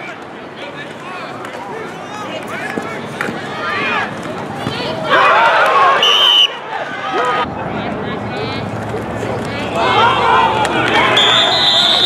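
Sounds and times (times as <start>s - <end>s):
players and voices shouting: 0.0s - 12.0s
whistle blown on high note: 11.2s - 12.0s.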